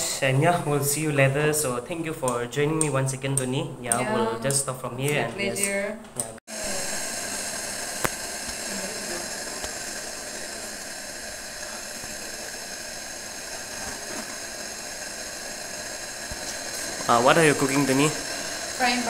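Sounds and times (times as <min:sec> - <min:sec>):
peppers sizzling in oil: 0:06.5 - 0:19.0.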